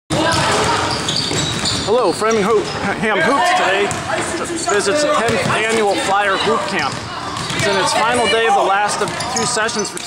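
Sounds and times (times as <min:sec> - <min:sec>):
basketballs bouncing on wooden floor: 0:00.1 - 0:02.5, 0:03.8 - 0:04.5, 0:05.2 - 0:10.0.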